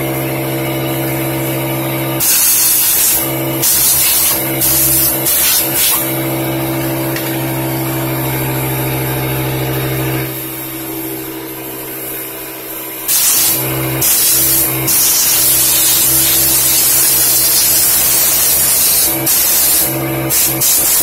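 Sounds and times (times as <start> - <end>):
compressed air hissing: 1.3 - 6.8, 10.2 - 21.0.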